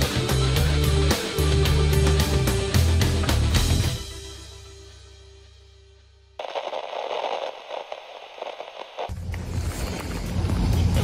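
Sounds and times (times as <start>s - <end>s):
crackling tv static hiss: 6.4s - 9.2s.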